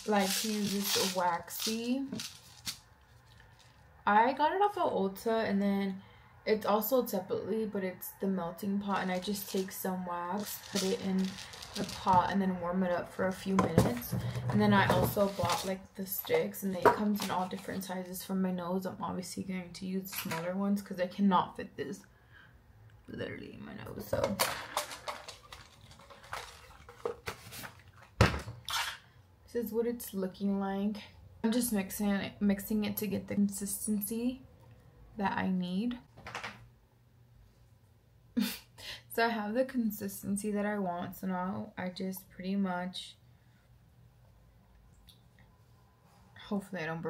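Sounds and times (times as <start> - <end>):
wax beads shifting in jar: 0.0 - 3.8, 8.9 - 12.4, 24.4 - 27.3.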